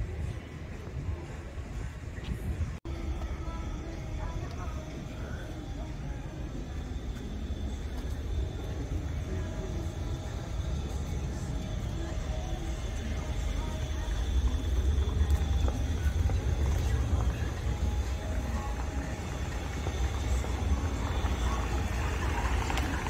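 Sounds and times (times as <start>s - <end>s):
faint voices: 0.0s - 23.0s
steady low rumble: 0.0s - 23.0s.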